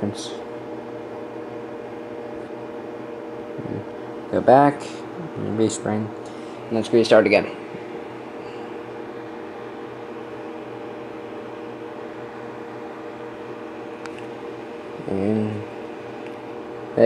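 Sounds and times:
room hum with low tones: 0.0 - 17.0
man's voice murmuring: 3.6 - 3.9, 5.1 - 5.8.

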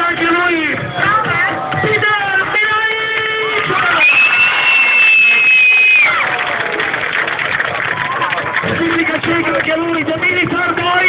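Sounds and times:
crowd cheering: 0.0 - 11.0
loud held whistle: 3.9 - 6.2.

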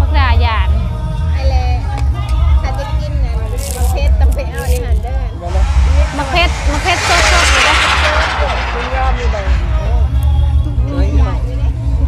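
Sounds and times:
loud hissing rush: 5.5 - 10.3.

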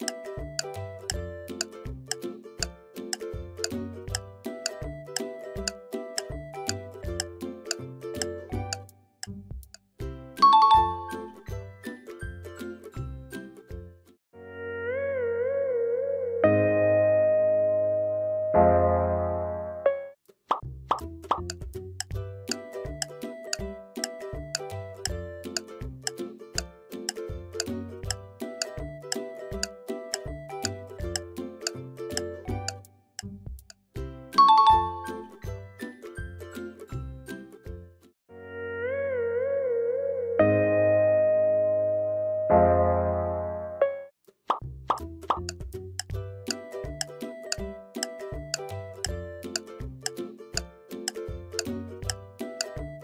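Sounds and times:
upbeat music with ticking beat: 0.0 - 9.4, 20.9 - 32.8, 44.9 - 53.0.

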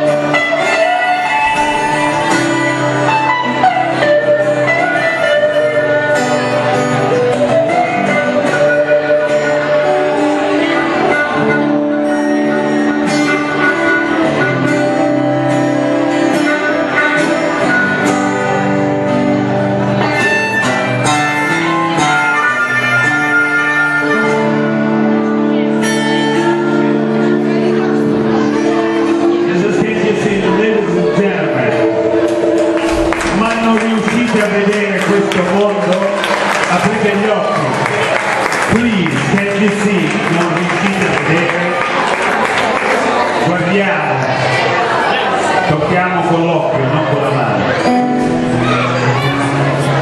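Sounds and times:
harmonica sustained notes: 0.0 - 38.7
song: 0.0 - 43.6
guitar strumming: 0.0 - 50.0
men talking: 29.5 - 32.1, 33.0 - 37.9, 38.7 - 42.0, 43.4 - 44.5, 45.1 - 47.8
audience applause: 32.1 - 43.6.

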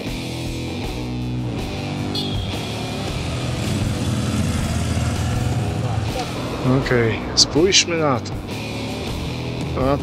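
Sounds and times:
guitar background music: 0.0 - 10.0
motorcycle engine running: 1.5 - 6.8.

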